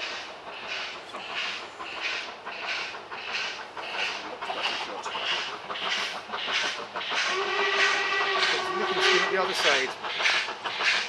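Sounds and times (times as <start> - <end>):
steam locomotive whistle: 7.3 - 9.3.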